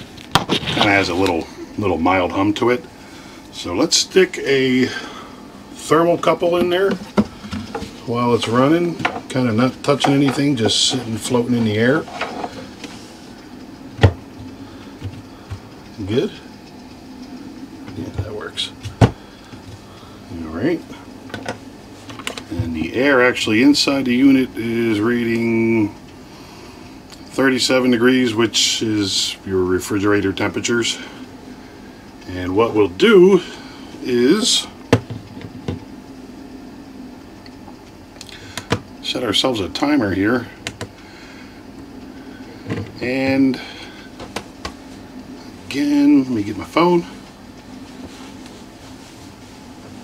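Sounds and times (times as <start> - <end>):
fridge humming: 0.0 - 50.0.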